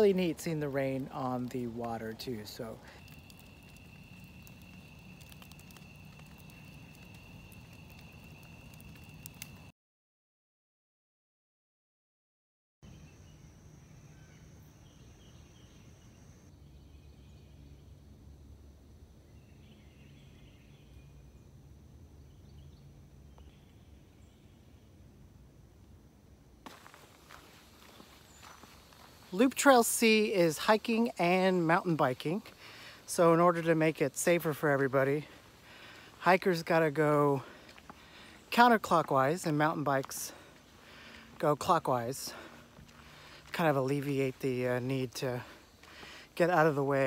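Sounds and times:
campfire crackling and popping: 0.0s - 9.7s, 26.6s - 29.9s, 42.3s - 43.6s
footsteps on dirt trail: 0.0s - 9.7s, 26.6s - 47.0s.

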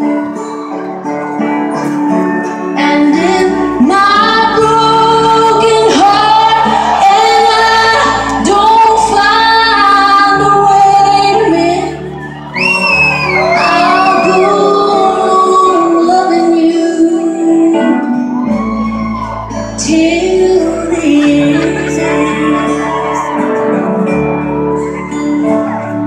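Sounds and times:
live country ballad: 0.0s - 26.0s
woman singing: 2.7s - 12.2s, 13.4s - 18.8s, 19.6s - 23.5s.

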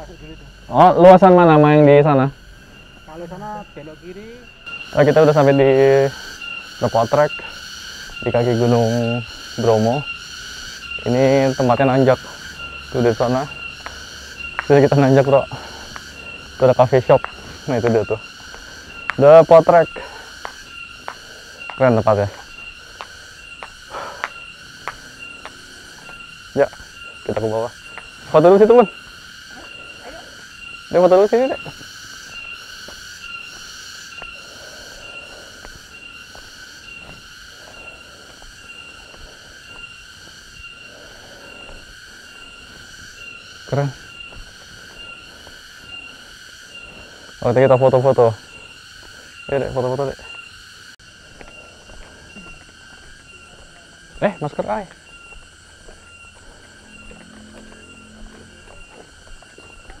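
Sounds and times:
insects chirping: 0.0s - 60.0s
footsteps on paved path: 1.3s - 60.0s.

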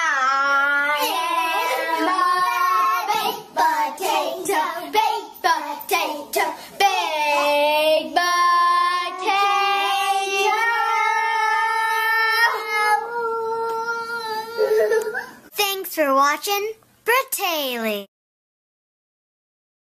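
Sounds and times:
child singing: 0.0s - 15.2s.

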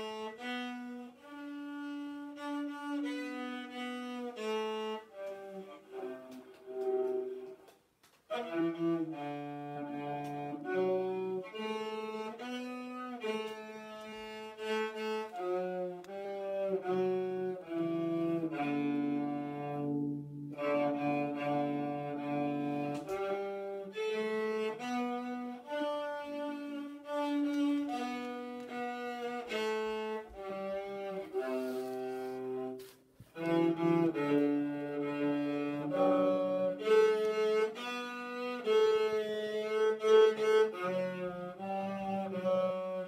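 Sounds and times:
solo cello melody: 0.0s - 43.0s.

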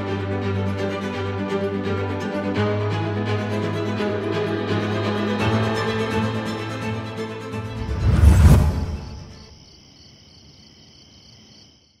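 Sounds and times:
crickets chirping: 8.8s - 12.0s.

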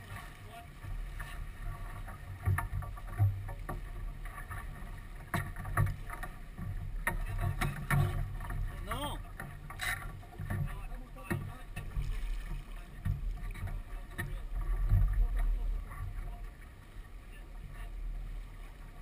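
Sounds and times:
wind and water rumble: 0.0s - 19.0s.

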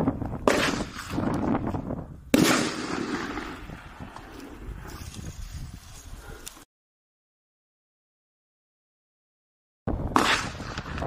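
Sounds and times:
firework launch bang: 2.3s - 3.6s, 10.1s - 11.0s.

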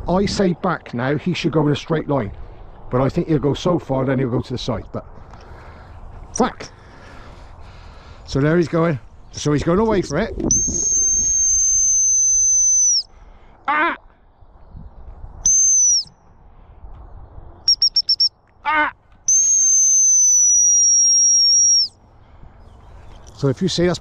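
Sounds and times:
high training whistle blasts: 10.5s - 13.1s, 15.4s - 16.1s, 17.7s - 18.4s, 19.3s - 22.0s
short whistle pips: 10.5s - 13.1s, 15.4s - 16.1s, 17.7s - 18.4s, 19.3s - 22.0s
person shouting calls: 13.6s - 14.1s, 18.6s - 19.0s.

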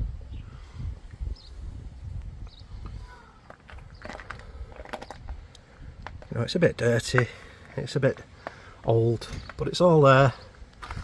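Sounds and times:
wind rumble on microphone: 0.0s - 6.4s, 10.6s - 11.0s.

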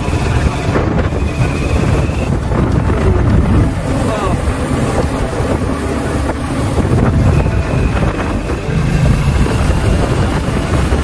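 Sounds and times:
road noise: 0.0s - 11.0s
vehicle engine rumble: 0.0s - 11.0s
wind buffeting microphone: 0.0s - 11.0s.

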